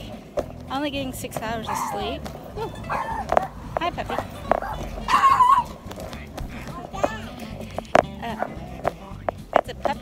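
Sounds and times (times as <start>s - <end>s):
puppy barking and yipping: 1.6s - 7.3s
puppy wavering cry: 1.7s - 3.6s, 4.6s - 5.8s.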